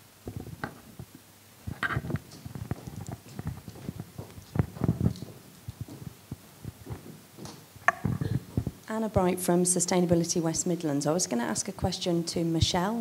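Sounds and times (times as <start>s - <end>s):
microphone handling noise: 0.2s - 8.9s.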